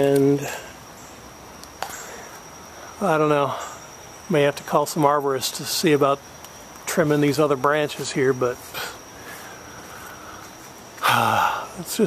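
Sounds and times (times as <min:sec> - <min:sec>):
high-pitched insect chorus: 0:00.0 - 0:12.0.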